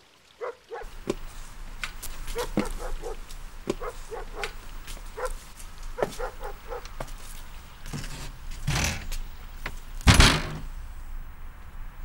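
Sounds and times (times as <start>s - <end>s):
front door shutting: 7.8s - 10.7s.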